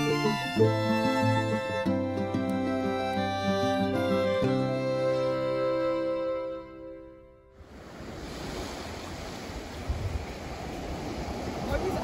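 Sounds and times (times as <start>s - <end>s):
background music: 0.0s - 7.5s
ocean waves breaking on beach: 7.5s - 12.0s.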